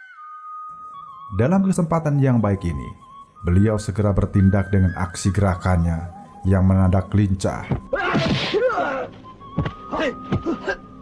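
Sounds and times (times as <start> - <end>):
background music: 0.0 - 11.0
sharp thud: 7.8 - 8.7, 9.6 - 10.5.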